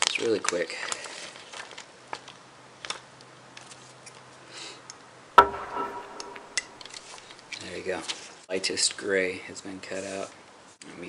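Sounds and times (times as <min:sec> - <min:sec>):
sharp knock with ringing: 0:05.4 - 0:07.0.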